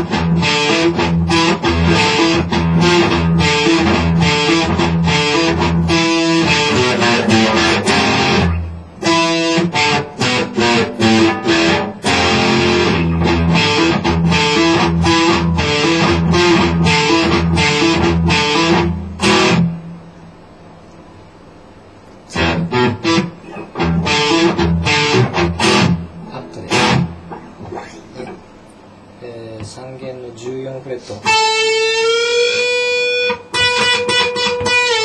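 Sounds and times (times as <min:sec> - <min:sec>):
electric guitar playing: 0:00.0 - 0:20.1, 0:22.3 - 0:28.4, 0:31.2 - 0:35.0.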